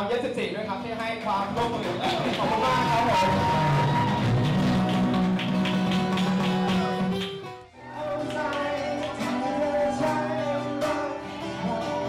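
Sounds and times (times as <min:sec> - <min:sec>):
acoustic guitars strumming: 0:01.5 - 0:12.0.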